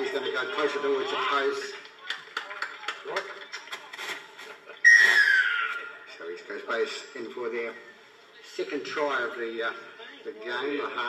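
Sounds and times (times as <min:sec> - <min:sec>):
referee's whistle blown: 0:04.8 - 0:05.7.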